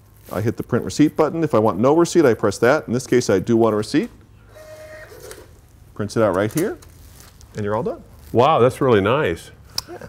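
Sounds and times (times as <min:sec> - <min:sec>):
paper feed buzz: 0:04.5 - 0:05.6
receipt printer tone: 0:04.5 - 0:05.6.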